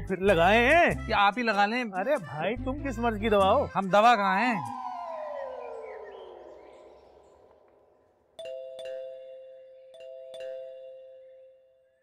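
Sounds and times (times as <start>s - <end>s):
falling musical tone: 4.3s - 9.6s
doorbell ding-dong chime: 8.4s - 11.8s.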